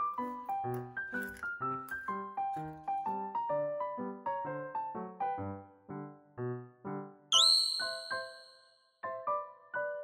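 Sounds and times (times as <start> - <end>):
soft piano music: 0.0 - 10.0.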